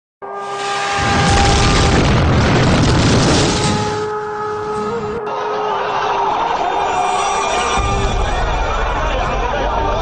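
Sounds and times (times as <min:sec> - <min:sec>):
long deep boom: 0:01.0 - 0:04.3
held musical note: 0:03.6 - 0:08.4.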